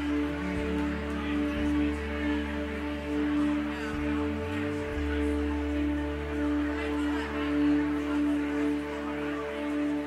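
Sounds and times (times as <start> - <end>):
murmur of crowd talk: 0.0 - 10.0
soft instrumental band music: 0.0 - 10.0.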